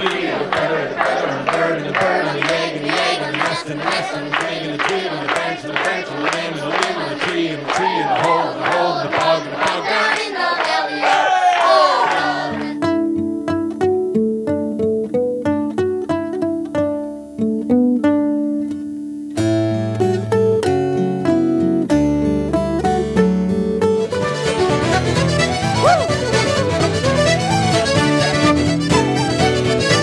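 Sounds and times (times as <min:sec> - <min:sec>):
fingerstyle acoustic guitar: 0:12.4 - 0:30.0
traditional band with fiddle: 0:23.8 - 0:30.0.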